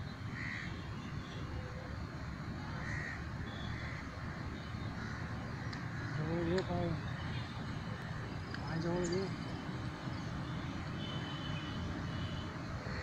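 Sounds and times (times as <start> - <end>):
low background noise: 0.0 - 13.0.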